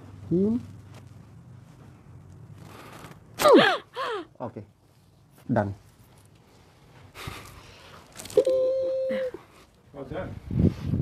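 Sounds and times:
woman's high ooh: 8.3 - 9.5.

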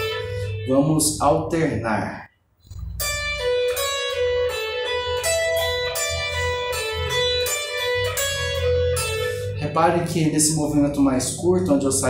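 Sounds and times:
electric guitar lick: 0.0 - 1.4, 2.7 - 12.0.

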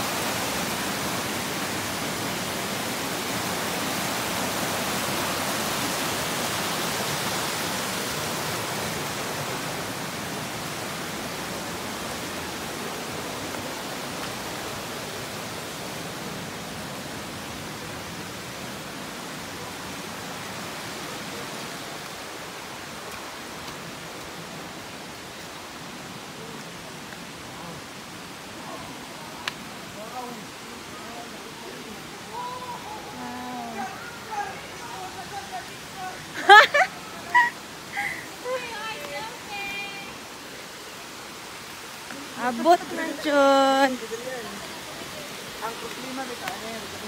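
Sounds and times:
stream rushing over rapids: 0.0 - 47.0.

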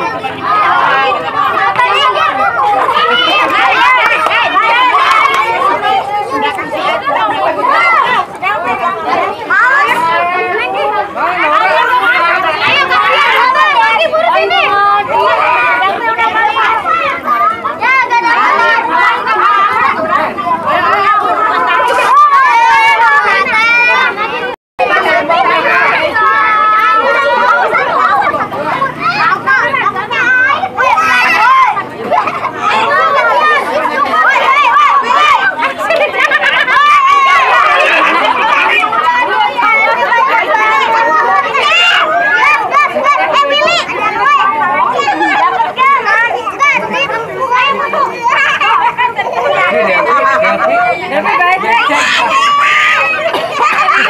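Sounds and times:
children shouting and chattering: 0.0 - 54.0.

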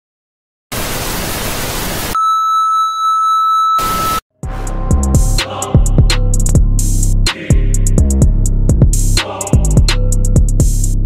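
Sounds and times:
high test-tone beep: 2.2 - 4.2.

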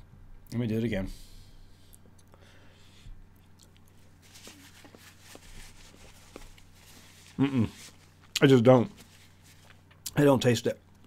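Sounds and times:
man chewing: 3.3 - 4.2.

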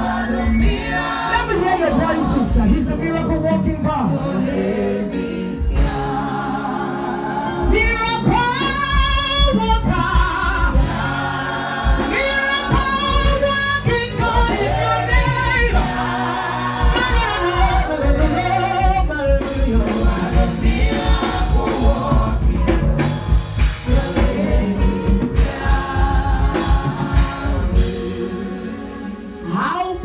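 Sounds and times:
gospel singing: 0.0 - 30.0
low drum beat: 7.6 - 28.5.

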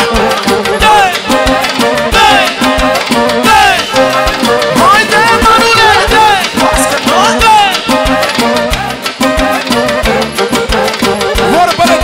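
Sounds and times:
lead melody with sliding notes: 0.0 - 12.0
steady drum beat: 0.0 - 12.0.

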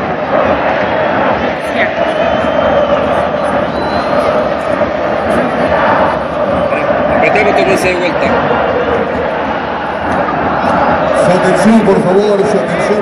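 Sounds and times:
stadium crowd shouting and cheering: 0.0 - 13.0.

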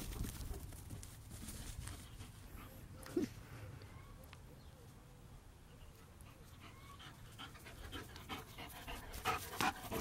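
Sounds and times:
dog panting: 6.3 - 10.0.

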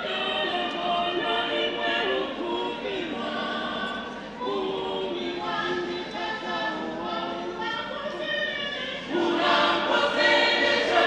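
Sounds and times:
church choir singing: 0.0 - 11.0.

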